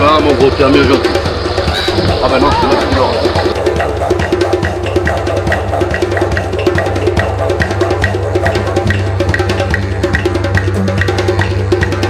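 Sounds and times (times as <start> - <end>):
music with drum beat and bass: 0.0 - 12.0.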